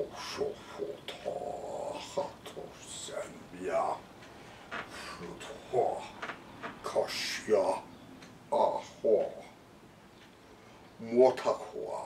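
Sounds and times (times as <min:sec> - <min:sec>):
person speaking: 0:00.0 - 0:09.6.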